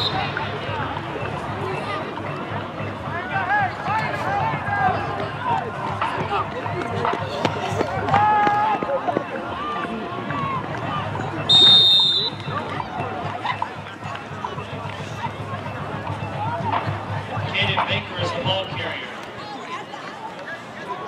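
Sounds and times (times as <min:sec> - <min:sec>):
referee's whistle blast: 0:00.0 - 0:00.4, 0:11.5 - 0:12.5.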